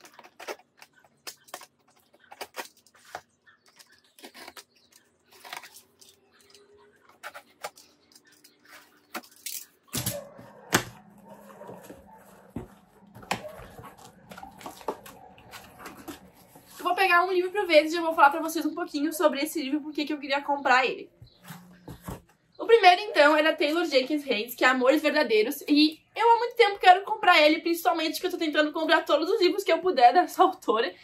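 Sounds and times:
knife cutting packing tape: 0.0 - 10.2
cardboard rustling and scraping: 7.0 - 9.4, 10.4 - 17.3, 21.3 - 22.3.

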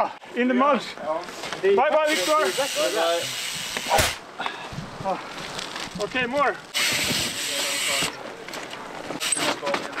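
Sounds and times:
bicycle tyres on loose dirt: 1.1 - 4.0, 4.6 - 10.0.

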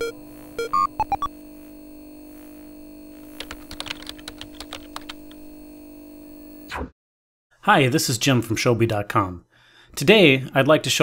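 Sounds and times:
short electronic beeps: 0.0 - 1.3
steady electronic hum: 0.0 - 6.7
computer keyboard typing: 3.4 - 5.4.

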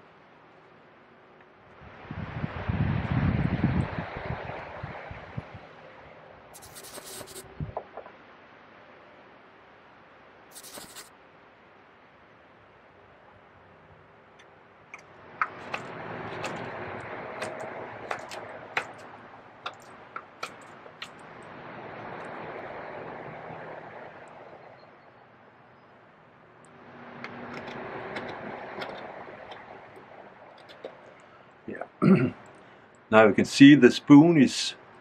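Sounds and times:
rushing noise: 1.8 - 32.5
knife carving wood: 6.6 - 7.4, 10.5 - 11.1, 15.0 - 21.2.

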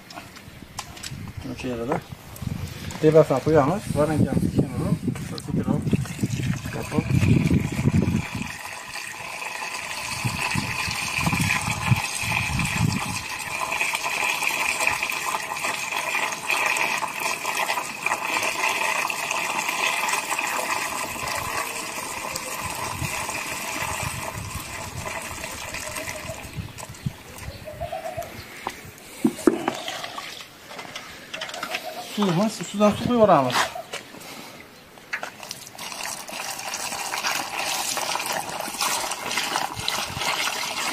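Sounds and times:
liquid pouring into plastic barrel: 5.3 - 27.5, 29.2 - 30.8, 35.2 - 40.9.

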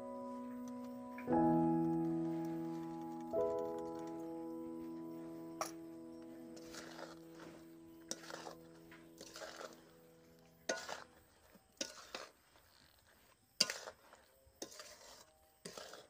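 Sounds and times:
background music: 0.0 - 11.0
metal spatula scraping wok: 4.9 - 16.0.

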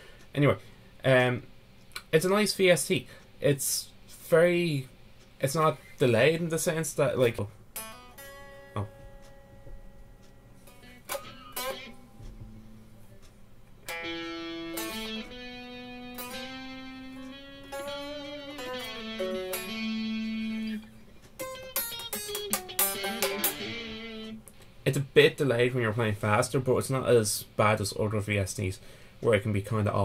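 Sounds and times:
overdriven electric guitar lead: 10.6 - 12.6, 13.8 - 24.7.

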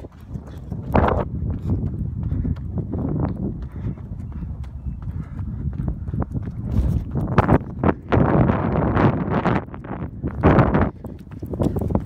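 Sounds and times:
footsteps on dirt trail: 0.0 - 12.0.

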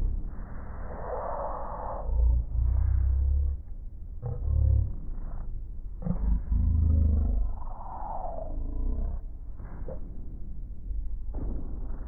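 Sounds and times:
deep rumble: 0.0 - 12.0.

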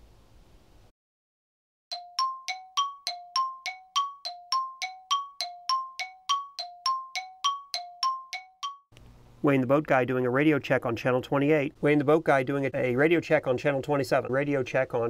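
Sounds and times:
two-note bell-like chime: 1.9 - 8.9.

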